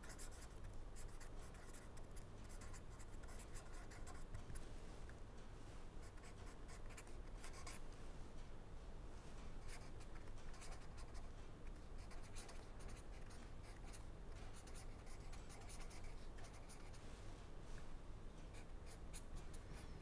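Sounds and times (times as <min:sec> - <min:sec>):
low steady hum: 0:00.0 - 0:20.0
pen writing on paper: 0:10.5 - 0:11.2.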